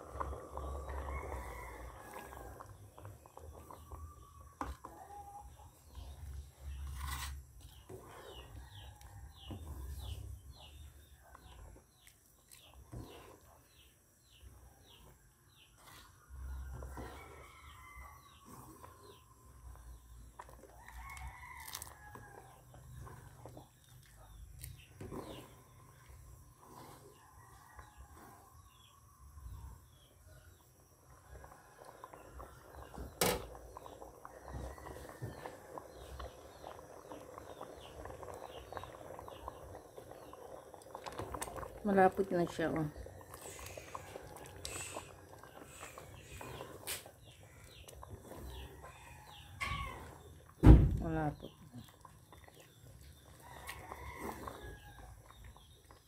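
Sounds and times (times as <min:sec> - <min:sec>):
roosters crowing: 0:00.0 - 0:02.7, 0:20.8 - 0:22.6, 0:48.3 - 0:50.3, 0:53.3 - 0:55.3
spatula scraping porridge in pot: 0:05.8 - 0:10.9, 0:15.6 - 0:19.4, 0:24.7 - 0:28.6, 0:33.8 - 0:50.4, 0:51.8 - 0:56.0.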